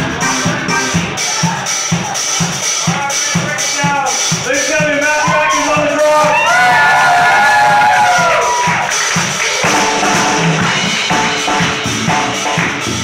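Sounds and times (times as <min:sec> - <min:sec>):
reggae-funk band playing: 0:00.0 - 0:13.0.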